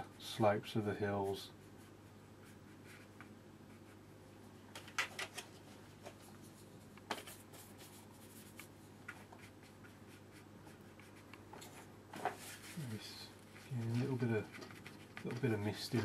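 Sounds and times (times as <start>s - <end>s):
low steady hum: 0.0s - 16.0s
brush clicking and scraping palette: 13.5s - 16.0s.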